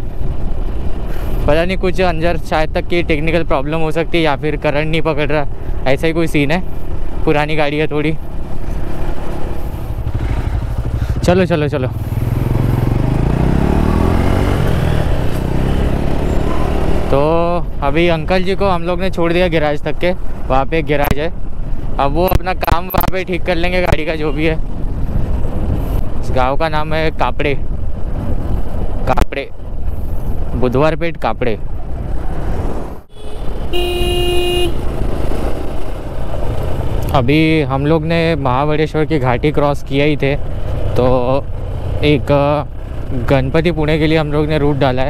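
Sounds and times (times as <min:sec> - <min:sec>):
wind and road noise: 0:00.0 - 0:45.0
motorcycle engine accelerating: 0:08.2 - 0:17.5, 0:31.8 - 0:45.0
wind noise: 0:21.2 - 0:30.8
vehicle horn: 0:33.1 - 0:34.9.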